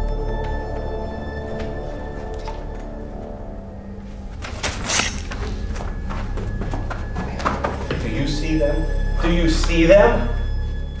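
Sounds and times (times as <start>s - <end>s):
low droning music: 0.0s - 11.0s.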